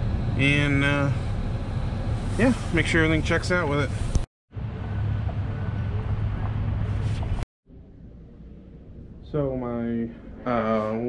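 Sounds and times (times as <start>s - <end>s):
outdoor rushing noise with rumble: 0.0s - 11.0s.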